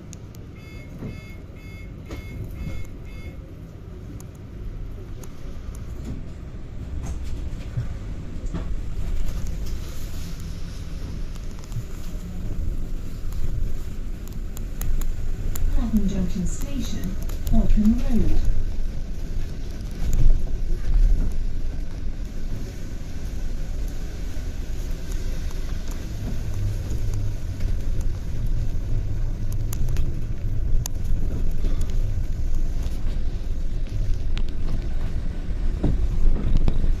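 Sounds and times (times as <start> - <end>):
bus engine and road rumble: 0.0 - 37.0.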